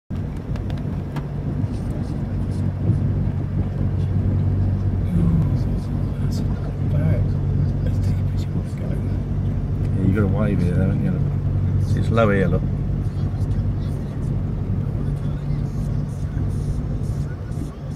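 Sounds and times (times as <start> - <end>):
truck engine humming: 0.1 - 17.9.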